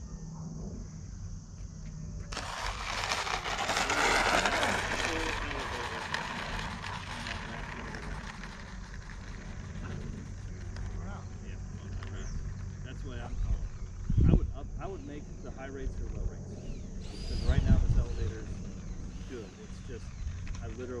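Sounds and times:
model jet fan whoosh: 0:02.3 - 0:11.8, 0:17.0 - 0:21.0.

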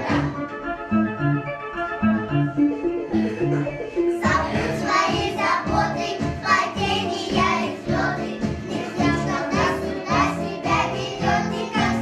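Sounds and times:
instrumental backing: 0:00.0 - 0:12.0
girls singing together: 0:04.2 - 0:12.0.

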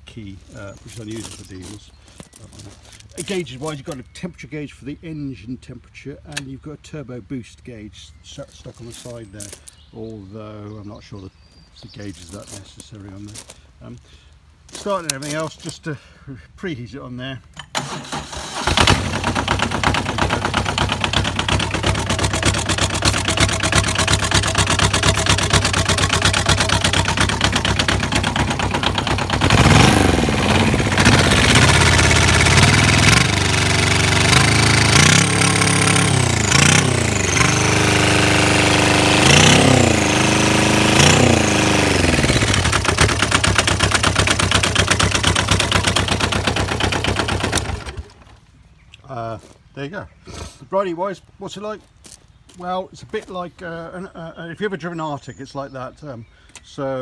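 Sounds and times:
diesel engine clattering: 0:17.6 - 0:48.4
turbocharger whine: 0:18.7 - 0:48.2.

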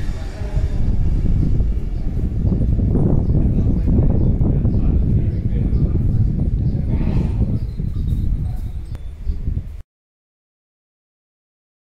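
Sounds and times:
wind buffeting microphone: 0:00.0 - 0:09.8.

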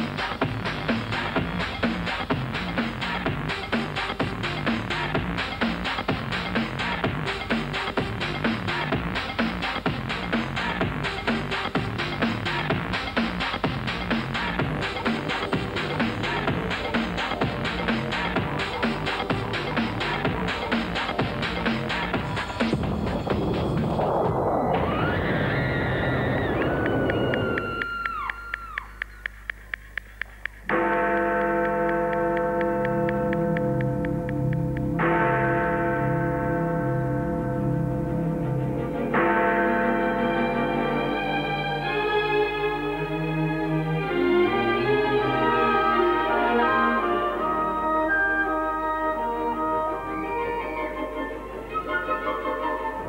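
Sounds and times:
explosion-like rush with falling tones: 0:22.2 - 0:28.3
clock ticking: 0:29.0 - 0:35.3
orchestral music with held chords: 0:30.9 - 0:53.0.

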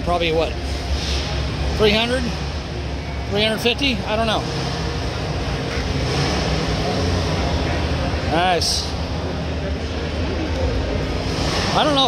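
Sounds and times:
low rumble of crowd and machinery: 0:00.0 - 0:12.0.

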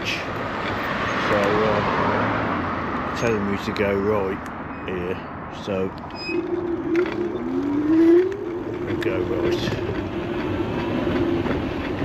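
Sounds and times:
tyre and wind noise: 0:05.7 - 0:12.0
rising pitched tone: 0:06.0 - 0:10.2.

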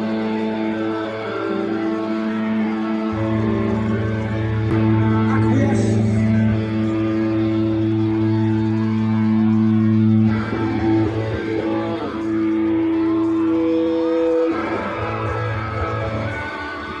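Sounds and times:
distorted electric guitar chords: 0:00.0 - 0:17.0.

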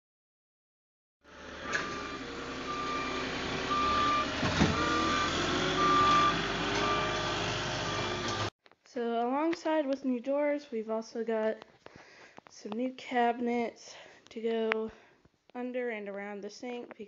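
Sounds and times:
forklift engine running: 0:01.3 - 0:08.5
backup alarm beeping: 0:01.7 - 0:08.5.

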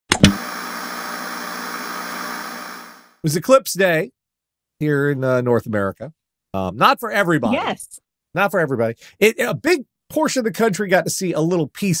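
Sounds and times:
tv static hiss: 0:00.3 - 0:03.0.

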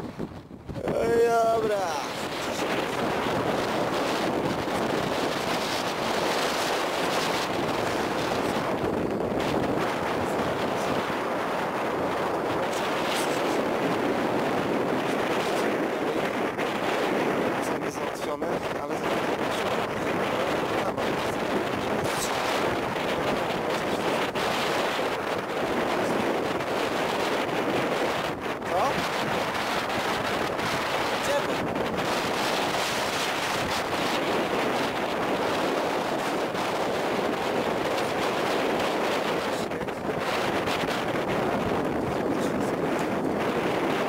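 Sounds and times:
wind rushing across microphone: 0:00.0 - 0:44.0.

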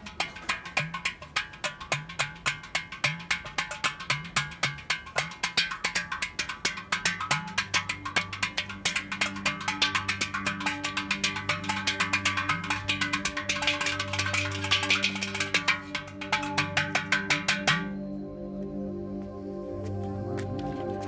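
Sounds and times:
hands drumming brass pot: 0:00.0 - 0:18.0
low steady drone: 0:07.3 - 0:21.0.

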